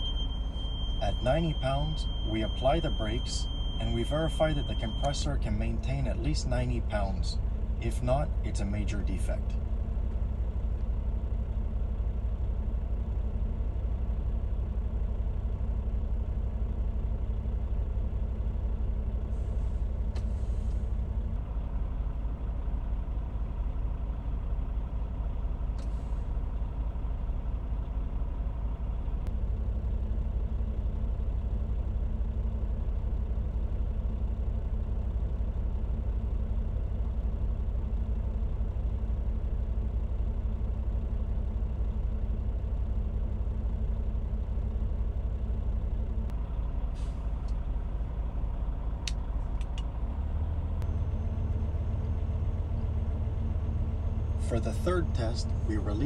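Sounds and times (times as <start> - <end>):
diesel truck engine idling: 0.0 - 56.0.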